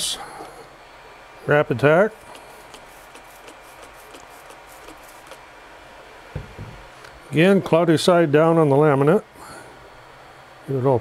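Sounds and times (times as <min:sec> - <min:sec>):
spray bottle spritzes: 0:02.2 - 0:05.4.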